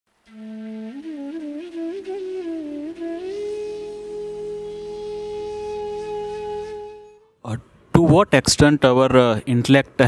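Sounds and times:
bamboo flute melody: 0.2 - 7.4.

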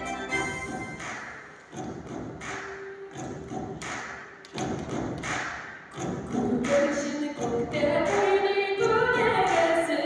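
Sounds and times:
steady thudding beat: 0.3 - 9.6.

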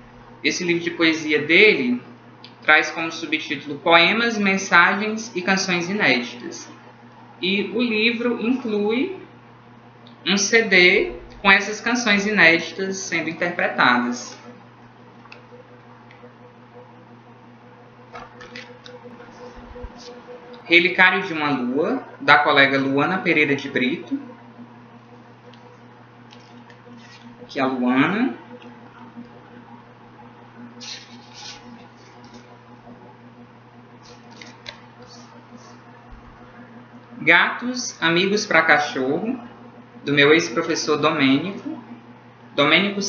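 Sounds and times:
steady low hum: 0.0 - 43.0
book pages flipping: 18.1 - 20.2, 26.2 - 27.4, 30.8 - 32.5, 34.0 - 36.3
paper and cover rustling: 18.2 - 20.2, 26.3 - 27.4, 30.8 - 32.5, 34.0 - 35.3.

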